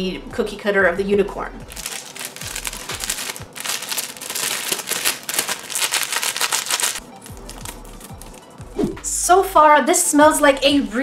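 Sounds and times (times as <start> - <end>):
background music: 0.0 - 11.0
plastic packet crinkling: 1.7 - 8.5.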